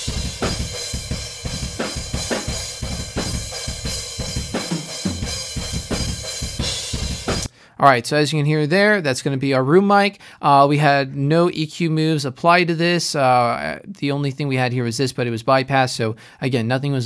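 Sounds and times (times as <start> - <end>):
drum kit playing metal breakdown: 0.0 - 7.5.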